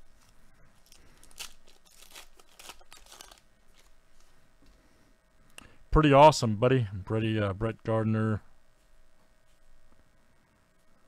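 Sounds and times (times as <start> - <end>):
wrapper crinkling and tearing: 0.0 - 4.3.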